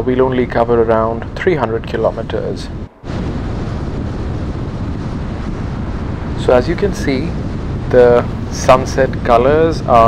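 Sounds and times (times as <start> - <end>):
car road and wind noise: 0.0 - 10.0.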